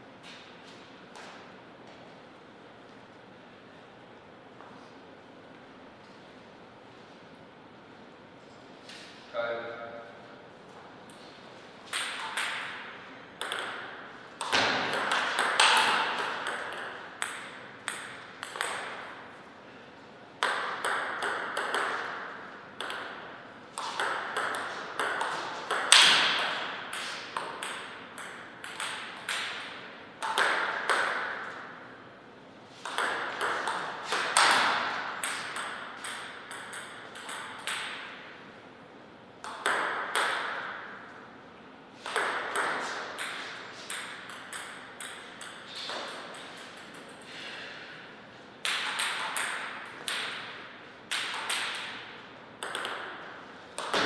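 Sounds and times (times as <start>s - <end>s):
table tennis ball ticking: 35.2s - 38.0s.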